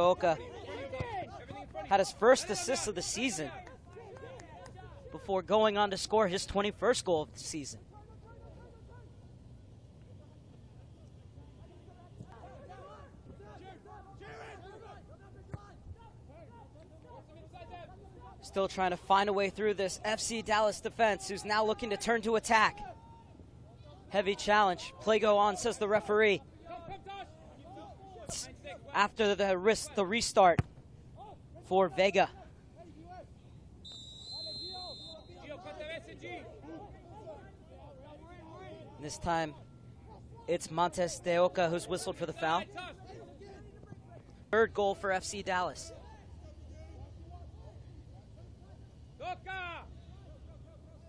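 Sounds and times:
players shouting: 0.0 - 6.5, 11.4 - 30.3, 33.9 - 51.0
low steady hum: 4.8 - 51.0
distant shouting voices: 10.9 - 18.4, 32.3 - 40.6
referee's whistle blast: 33.8 - 35.4.

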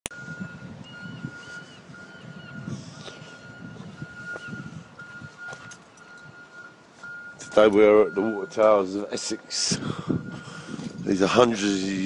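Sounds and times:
low rumbling: 0.1 - 11.9.

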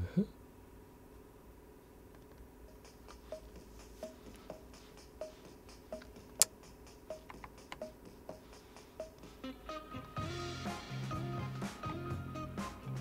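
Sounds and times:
faint steady hum: 0.0 - 13.0
keyboard and mouse clicking: 7.2 - 7.9.

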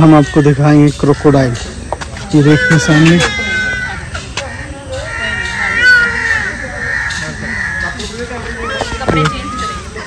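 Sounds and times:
bird calls: 0.0 - 10.0
people's voices: 0.0 - 10.0.

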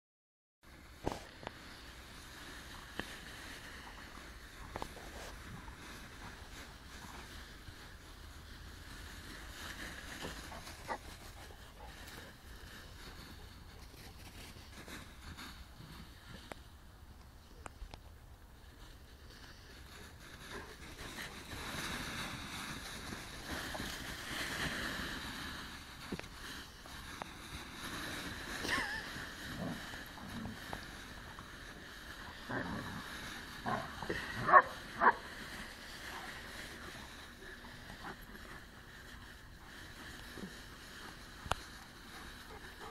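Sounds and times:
dry leaves rustling and crunching: 0.9 - 16.5, 18.6 - 42.9.

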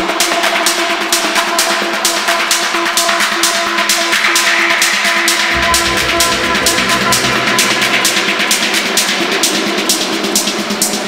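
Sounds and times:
techno drum beat: 5.5 - 9.3.

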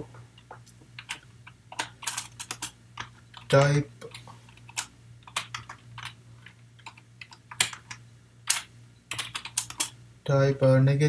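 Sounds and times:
computer keyboard keystrokes: 1.0 - 10.0.

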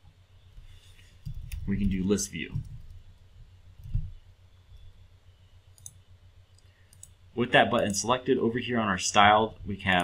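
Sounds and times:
keyboard and mouse clicks: 1.2 - 3.0, 3.8 - 4.2, 5.7 - 8.0.

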